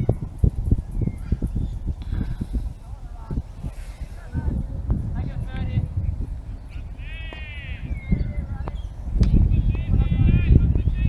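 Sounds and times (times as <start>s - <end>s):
wind rumbling on microphone: 0.0s - 11.0s
bleat-like call: 7.0s - 8.0s.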